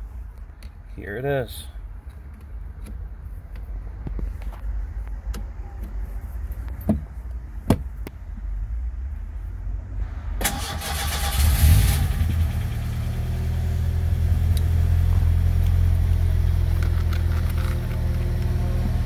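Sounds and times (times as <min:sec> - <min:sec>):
engine idling: 0:10.1 - 0:19.0
engine starter cranking: 0:10.4 - 0:12.2.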